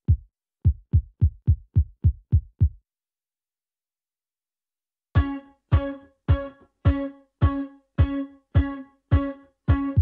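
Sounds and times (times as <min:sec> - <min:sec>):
electronic kick drum hits: 0:00.1 - 0:02.8.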